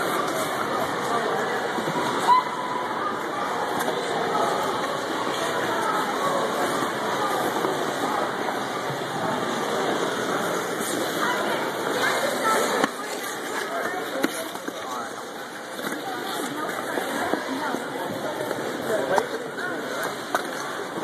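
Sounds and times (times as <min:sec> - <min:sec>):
indoor ice rink noise: 0:00.0 - 0:21.0.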